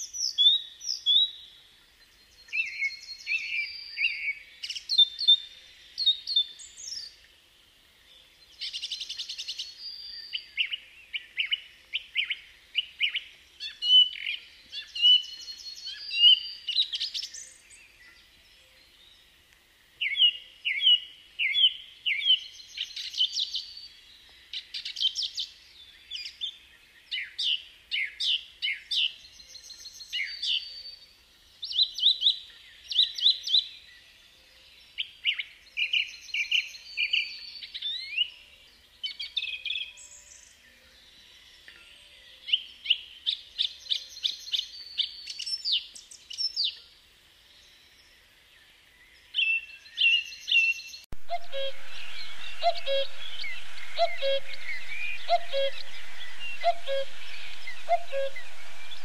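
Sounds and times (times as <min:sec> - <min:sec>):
songbirds chirping and trilling: 0:00.0 - 0:59.0.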